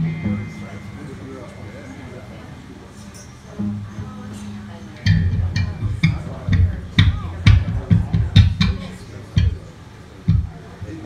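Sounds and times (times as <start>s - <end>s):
drum kit hits: 0.0s - 1.4s, 5.0s - 9.6s, 10.3s - 10.6s
bass guitar: 0.0s - 1.5s, 3.5s - 9.7s, 10.3s - 11.0s.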